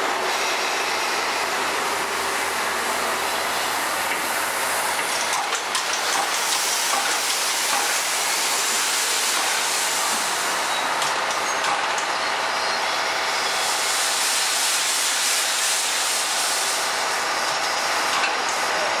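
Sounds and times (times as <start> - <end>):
steam hissing: 0.0 - 11.5, 12.2 - 18.1.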